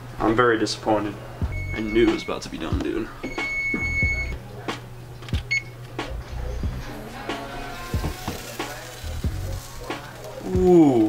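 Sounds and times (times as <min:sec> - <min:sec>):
electronic oven timer beeping: 0:01.5 - 0:02.5, 0:03.2 - 0:04.4, 0:05.5 - 0:05.8.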